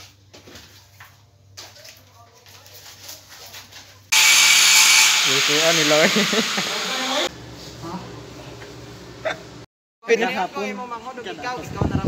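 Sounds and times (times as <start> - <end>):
loud steady hiss: 4.1 - 7.3.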